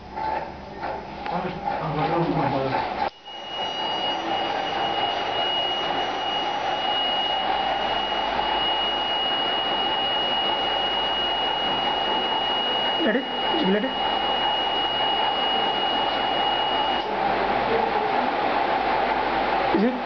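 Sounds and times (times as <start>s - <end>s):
high-pitched electronic whine: 3.0s - 17.8s.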